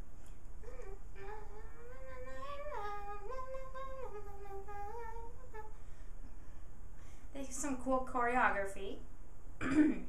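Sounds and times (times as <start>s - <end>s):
girl humming: 0.6s - 6.0s.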